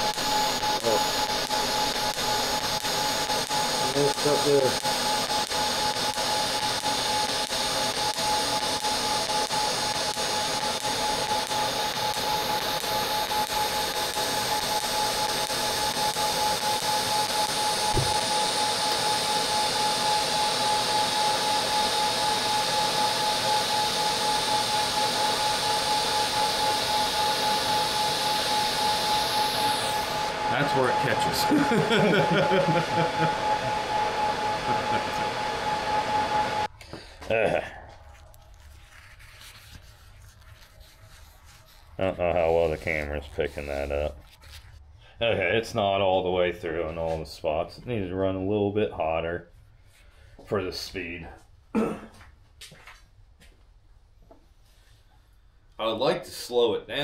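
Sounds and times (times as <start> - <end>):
welding arc hissing and whining: 0.0 - 44.6.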